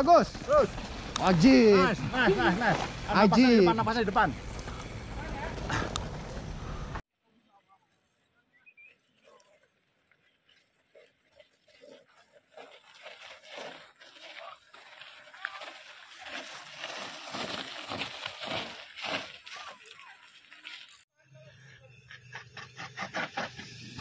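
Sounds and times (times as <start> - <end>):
bike tyres crunching on gravel: 0.0 - 7.0, 10.2 - 21.0.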